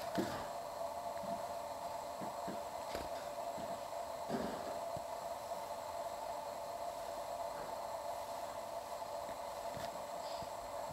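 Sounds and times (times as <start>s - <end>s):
steady hiss: 0.0s - 10.9s.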